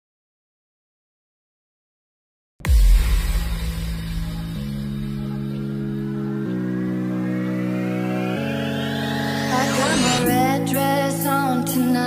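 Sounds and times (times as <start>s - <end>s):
electronic held chords: 3.2s - 12.0s
rising synth sweep: 5.0s - 10.7s.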